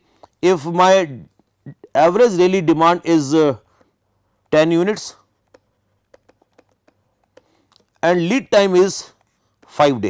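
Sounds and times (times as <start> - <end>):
stylus ticking on pen tablet: 3.7 - 8.2.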